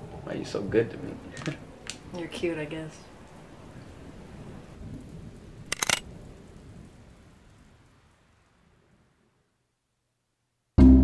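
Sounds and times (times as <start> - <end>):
sharp clicks: 5.7 - 6.0.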